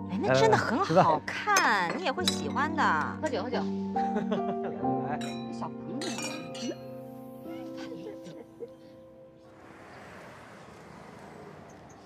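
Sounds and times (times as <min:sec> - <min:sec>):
drinking glasses clinking: 0:05.2 - 0:06.9.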